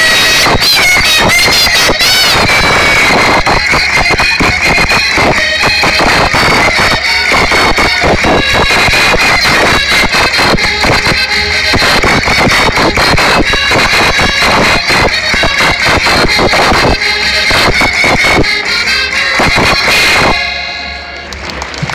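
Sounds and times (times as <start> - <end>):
folk-dance music with quick beat: 0.0 - 21.9.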